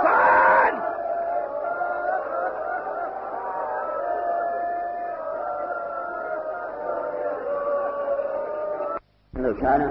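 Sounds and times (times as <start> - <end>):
mourners wailing and weeping: 0.0 - 9.0.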